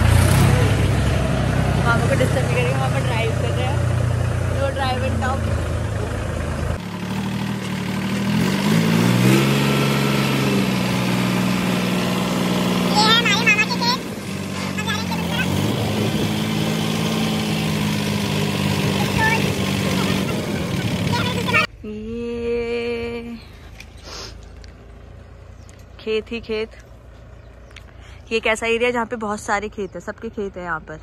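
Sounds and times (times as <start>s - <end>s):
diesel tractor engine running: 0.0s - 22.0s, 22.6s - 31.0s.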